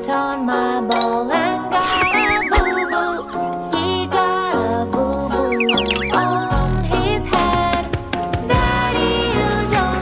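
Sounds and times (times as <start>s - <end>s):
cartoon music: 1.7s - 4.1s, 5.3s - 7.0s
whistle sliding down in pitch: 1.8s - 3.6s.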